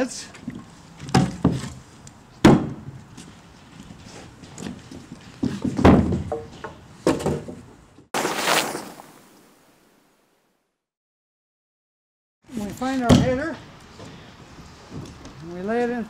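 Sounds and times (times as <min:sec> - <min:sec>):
lumber knocking on wooden deck: 0:05.4 - 0:07.6.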